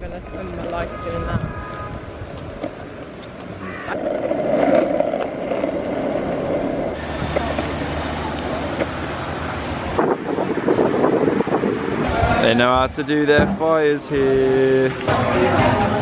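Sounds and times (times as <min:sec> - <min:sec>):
skateboard wheels rolling on asphalt: 0:00.0 - 0:13.3.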